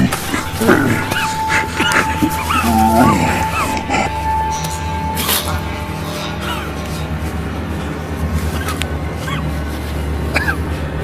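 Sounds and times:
high whimpering cries: 0:00.0 - 0:07.1
steady held tone: 0:00.0 - 0:10.2
low drone: 0:00.0 - 0:11.0.

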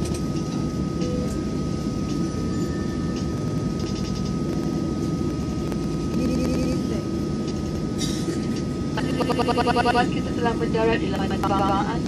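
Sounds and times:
jet cabin rumble: 0:00.0 - 0:12.0
thin steady whine: 0:00.0 - 0:12.0.

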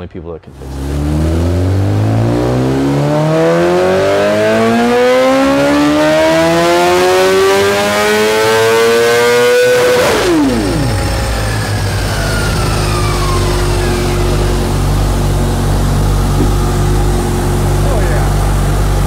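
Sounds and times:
motorcycle engine at full throttle: 0:00.5 - 0:19.0.

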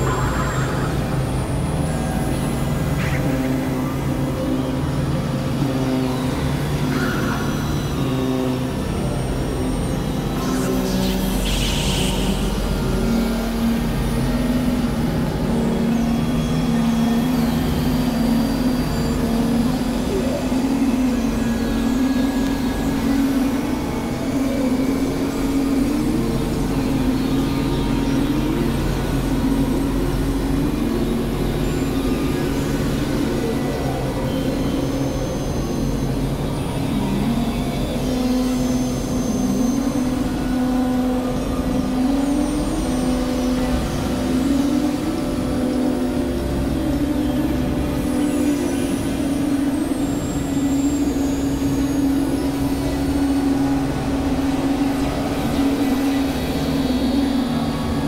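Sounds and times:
wavering pitched tone: 0:00.0 - 0:05.0.

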